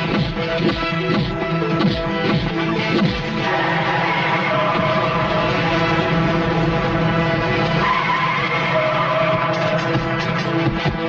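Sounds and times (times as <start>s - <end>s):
background film score: 0.0s - 11.0s
motorcycle tyre squeal: 7.8s - 9.8s.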